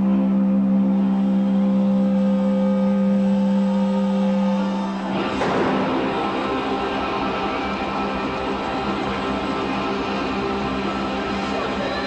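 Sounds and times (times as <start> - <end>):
amplified instrument holding long note: 0.0 - 12.0
loud burst of sound: 5.0 - 12.0.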